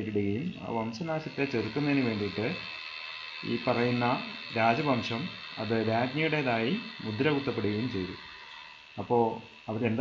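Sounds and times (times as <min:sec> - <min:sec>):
man narrating: 0:00.0 - 0:02.6, 0:03.4 - 0:08.2, 0:09.0 - 0:10.0
faint high-pitched whine: 0:00.0 - 0:10.0.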